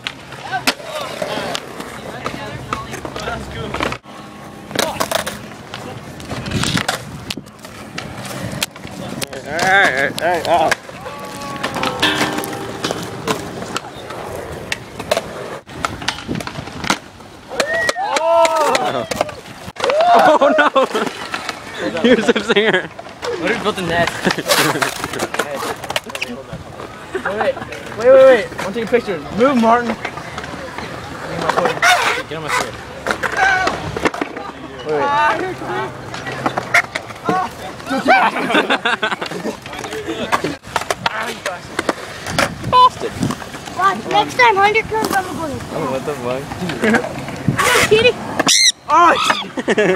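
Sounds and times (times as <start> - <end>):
skateboard clacks: 0.0 - 26.9, 27.5 - 48.5
skateboard wheels rolling on concrete: 0.0 - 49.9
young people talking: 8.9 - 15.5, 20.0 - 49.9.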